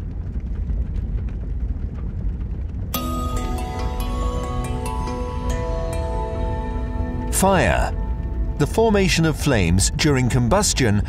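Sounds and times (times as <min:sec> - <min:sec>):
music chord: 0:03.0 - 0:11.0.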